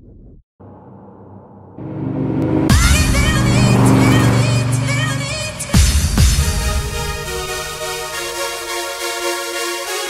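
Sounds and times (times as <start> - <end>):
electronic synth music: 1.8 - 10.0.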